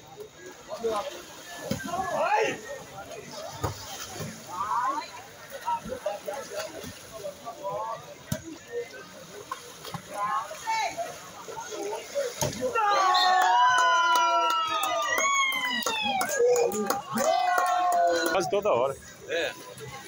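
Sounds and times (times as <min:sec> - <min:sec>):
water sloshing and splashing: 0:00.0 - 0:13.4
men shouting and cheering: 0:12.7 - 0:18.6.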